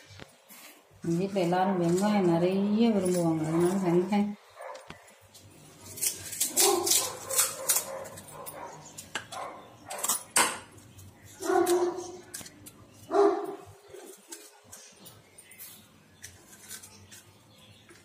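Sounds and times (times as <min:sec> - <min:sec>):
fried shells crackling and snapping: 0:04.9 - 0:13.1, 0:13.9 - 0:15.0, 0:15.6 - 0:18.0.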